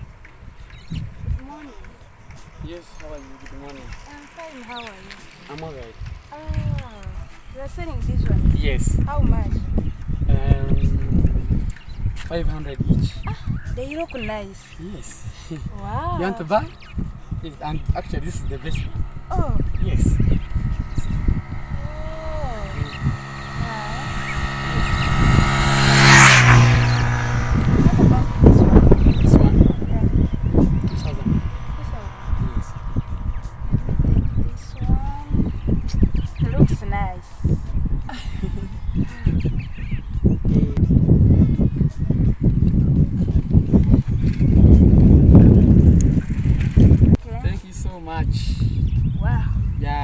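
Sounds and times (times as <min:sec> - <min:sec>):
vehicle passing on road: 0:00.0 - 0:47.9
wind buffeting microphone: 0:00.0 - 0:50.0.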